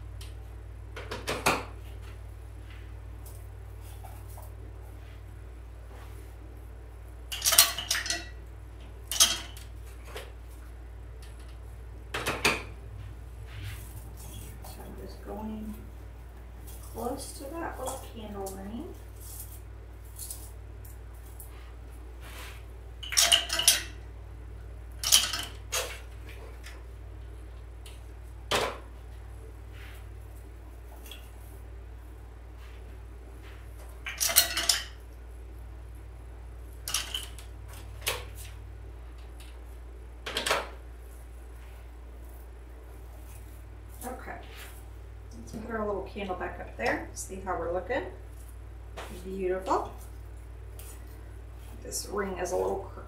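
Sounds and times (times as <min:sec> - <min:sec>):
steady low hum: 0:00.0 - 0:53.0
rustling and scraping of stems: 0:01.8 - 0:08.0, 0:12.9 - 0:23.2, 0:28.9 - 0:35.0, 0:41.0 - 0:45.8.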